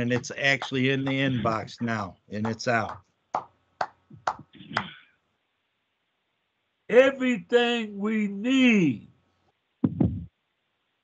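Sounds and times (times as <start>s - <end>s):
hand claps: 0.0s - 5.0s.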